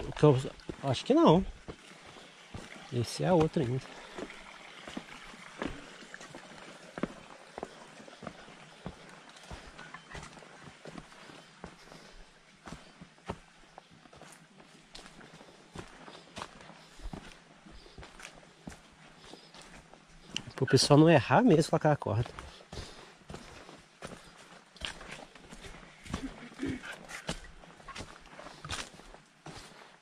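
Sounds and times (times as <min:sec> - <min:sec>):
footsteps on leafy dirt trail: 0:00.0 - 0:30.0.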